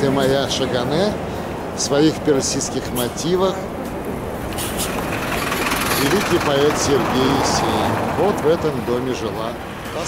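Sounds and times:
bus passing by: 0:00.0 - 0:10.0.

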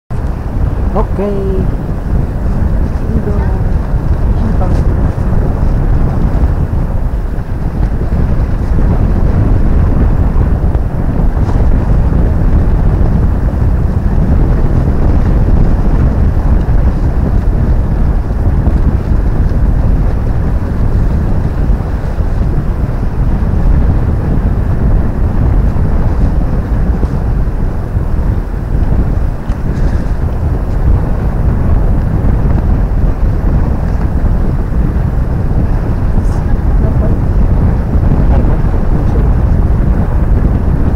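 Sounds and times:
wind buffeting microphone: 0:00.1 - 0:40.9.

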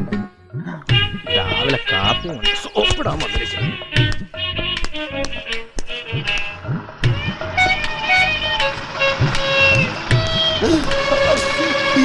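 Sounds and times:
held melodic notes: 0:00.9 - 0:12.0
vehicle traffic: 0:03.0 - 0:12.0
drum strokes with bending pitch: 0:06.0 - 0:12.0.

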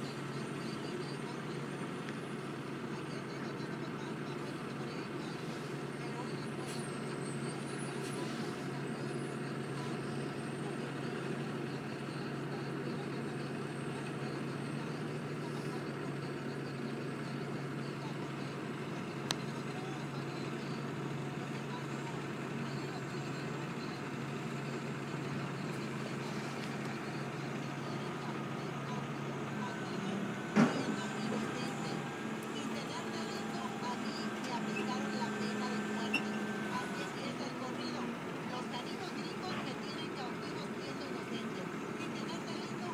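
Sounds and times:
truck diesel engine running: 0:00.0 - 0:42.9.

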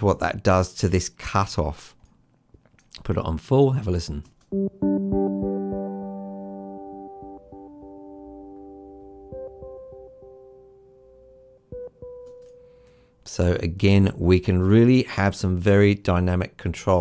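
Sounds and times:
filtered piano notes: 0:04.5 - 0:13.0.

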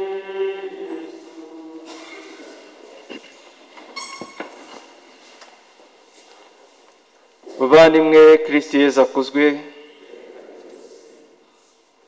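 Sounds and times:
short squeak: 0:04.0 - 0:04.5.

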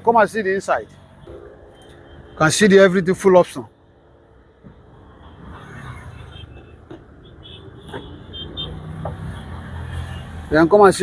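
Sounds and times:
motor vehicle rumbling: 0:00.0 - 0:11.0.

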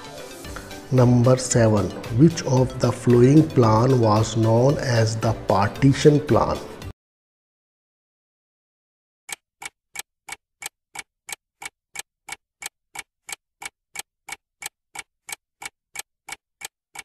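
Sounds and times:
clock ticking: 0:01.0 - 0:05.4, 0:09.3 - 0:17.0.

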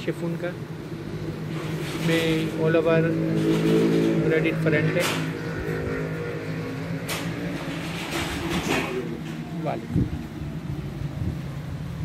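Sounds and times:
low motor drone: 0:02.5 - 0:12.0.

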